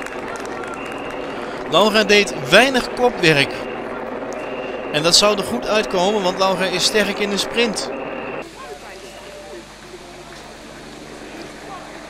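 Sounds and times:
distant spectator voices: 0:00.0 - 0:12.0.

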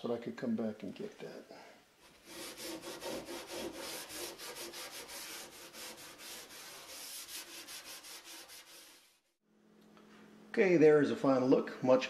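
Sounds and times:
sponge scrubbing steel stovetop: 0:02.0 - 0:09.3.

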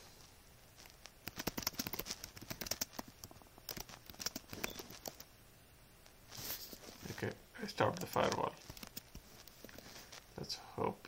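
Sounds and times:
typing on computer keyboard: 0:01.2 - 0:05.3.

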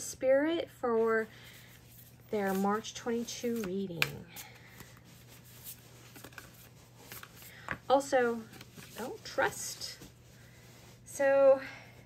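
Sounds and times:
low steady hum: 0:00.0 - 0:12.0
cards being shuffled by hand: 0:01.6 - 0:10.2.

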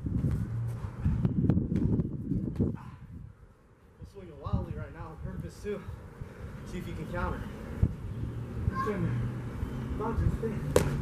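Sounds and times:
boxing glove punch smack: 0:10.7 - 0:11.0.

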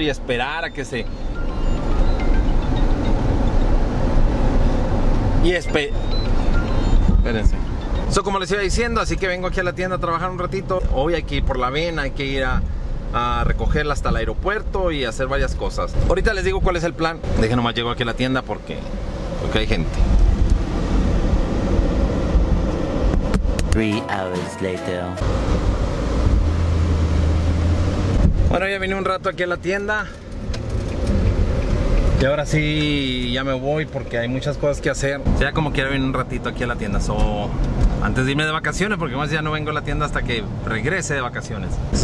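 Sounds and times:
car cabin road and engine noise: 0:00.0 - 0:24.3, 0:25.0 - 0:42.0.

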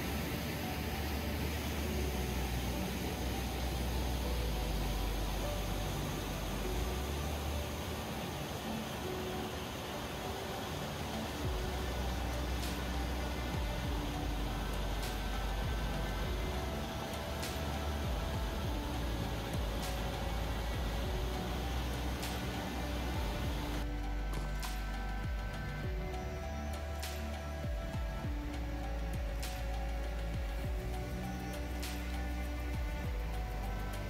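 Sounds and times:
faint background music: 0:00.0 - 0:34.0
white-water rapids rushing: 0:00.0 - 0:34.0.

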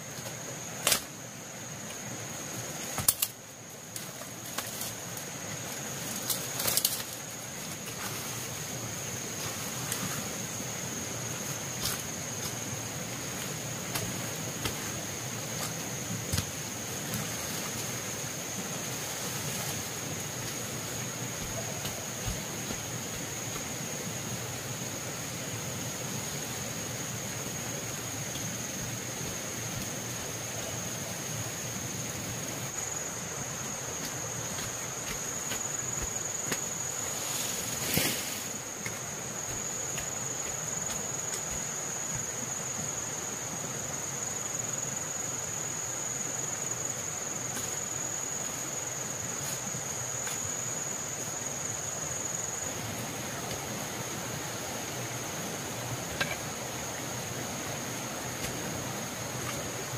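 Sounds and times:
background hiss: 0:00.0 - 0:59.9.

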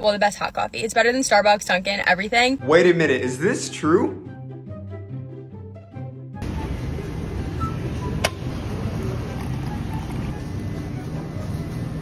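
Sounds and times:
store background noise: 0:06.4 - 0:12.0.

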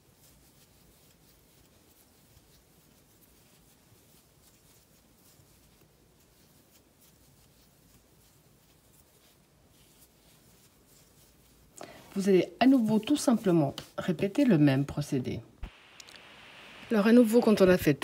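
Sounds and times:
yarn scratching and rustling: 0:00.0 - 0:15.4.

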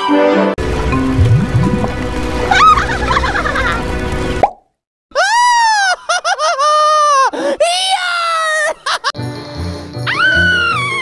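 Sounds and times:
background music: 0:00.0 - 0:04.4, 0:07.6 - 0:11.0
cartoon bubble plops: 0:01.0 - 0:02.0, 0:04.4 - 0:04.7.

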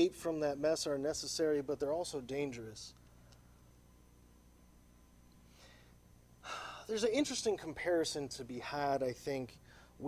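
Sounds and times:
man talking: 0:00.0 - 0:03.0, 0:06.8 - 0:09.6
faint low hum: 0:00.0 - 0:10.0
man inhaling sharply: 0:05.4 - 0:06.9, 0:09.6 - 0:10.0.

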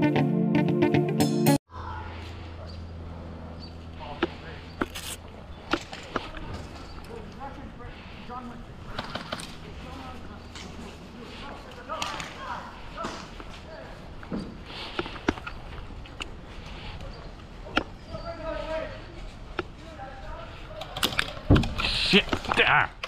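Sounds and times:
players calling out: 0:21.7 - 0:23.0.

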